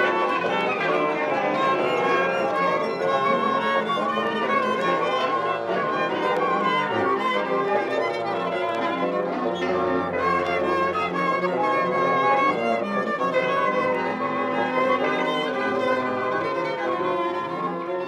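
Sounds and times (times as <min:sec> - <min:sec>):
bowed string music with violin: 0:00.0 - 0:18.0.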